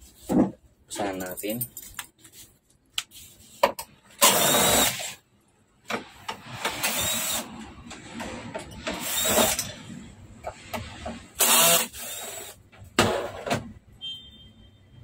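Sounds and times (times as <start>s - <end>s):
drill motor whirring: 4.2s - 5.2s, 6.6s - 7.5s, 8.9s - 9.7s, 11.4s - 12.6s.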